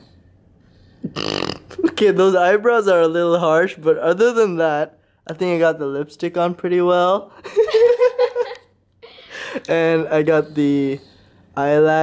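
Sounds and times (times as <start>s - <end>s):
woman laughing: 7.4s - 9.6s.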